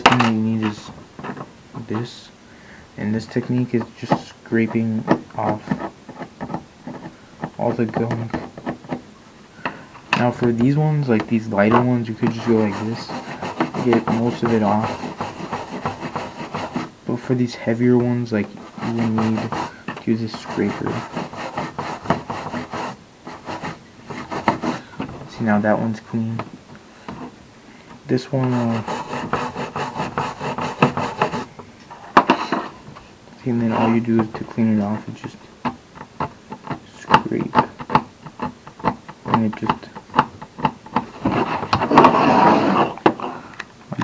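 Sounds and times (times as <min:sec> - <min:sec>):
hand tool scraping metal: 0:10.2 - 0:16.9, 0:18.3 - 0:25.1, 0:28.1 - 0:32.8, 0:40.9 - 0:43.3.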